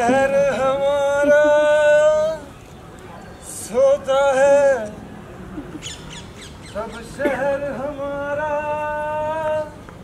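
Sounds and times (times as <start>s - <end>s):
bird squawking: 5.8s - 7.1s.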